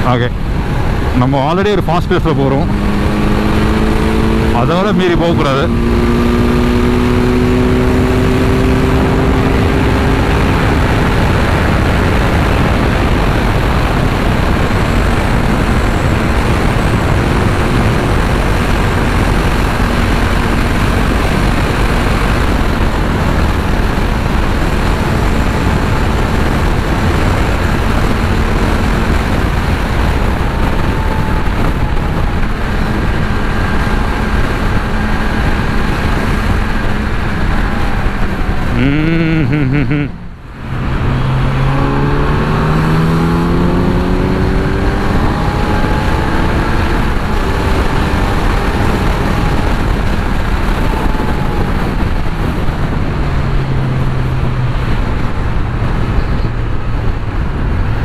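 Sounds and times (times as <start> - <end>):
motorcycle engine accelerating: 0.0 - 58.0
wind noise on microphone: 0.0 - 58.0.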